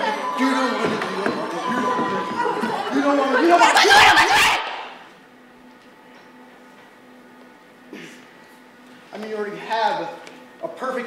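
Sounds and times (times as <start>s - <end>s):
woman shouting: 3.5s - 5.0s.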